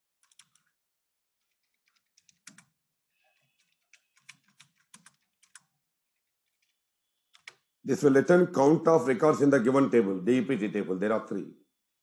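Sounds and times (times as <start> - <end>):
keyboard typing clicks: 0.2 - 0.7, 1.4 - 2.8, 3.5 - 5.7, 6.6 - 7.7.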